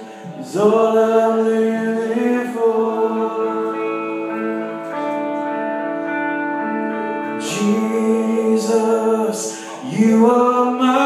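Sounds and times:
people singing: 0:00.0 - 0:05.0, 0:07.2 - 0:11.0
guitar and keyboard chords: 0:00.0 - 0:11.0.

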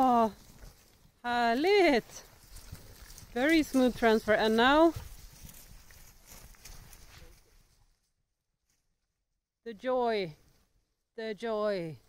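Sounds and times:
cattle walking through tall grass: 0:00.0 - 0:09.0.

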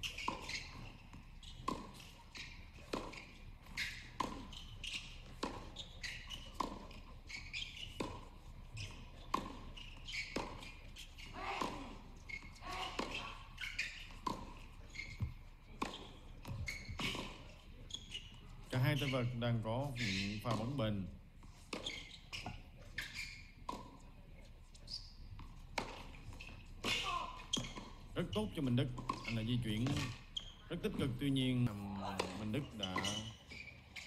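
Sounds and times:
rackets hitting tennis ball: 0:00.0 - 0:18.3.

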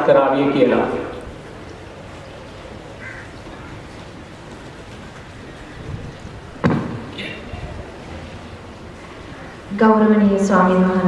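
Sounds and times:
outdoor background noise: 0:00.0 - 0:11.0
loud thump: 0:06.6 - 0:07.4.

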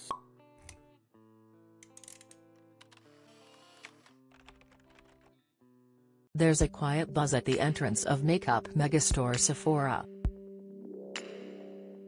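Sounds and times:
small clicks: 0:01.8 - 0:05.3.

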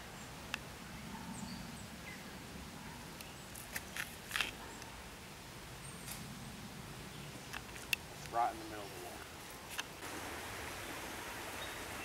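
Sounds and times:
woodland ambience: 0:00.0 - 0:12.0.

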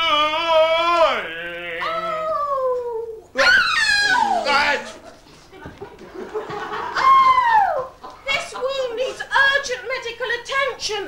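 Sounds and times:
person wailing: 0:00.0 - 0:04.8.

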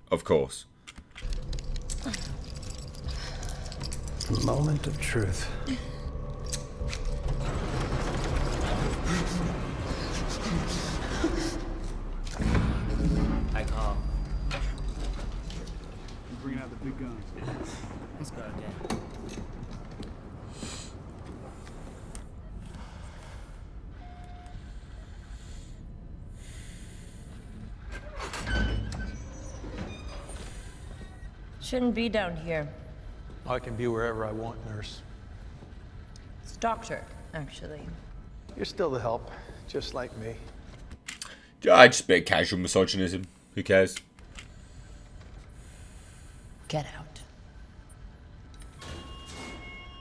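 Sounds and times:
dense rumbling noise: 0:01.3 - 0:23.8.

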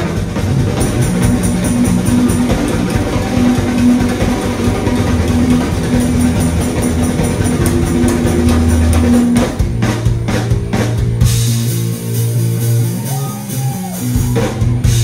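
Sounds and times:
drum kit cymbal beat: 0:00.0 - 0:15.0
electric guitars: 0:00.0 - 0:15.0.

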